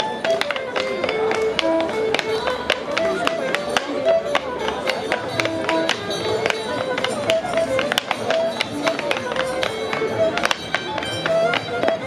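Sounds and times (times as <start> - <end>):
clogs tapping on wooden board: 0.0 - 12.0
folk tune: 0.0 - 12.0.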